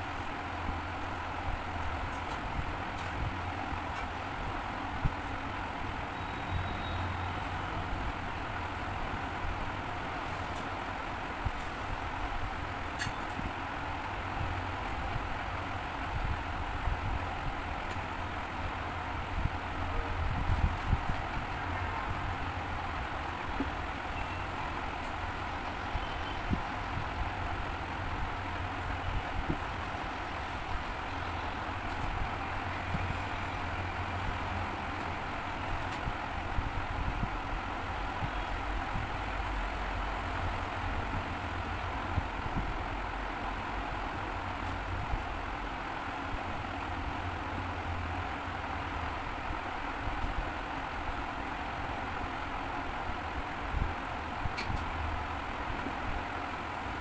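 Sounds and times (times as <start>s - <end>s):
low rumble and hiss: 0.0s - 57.0s.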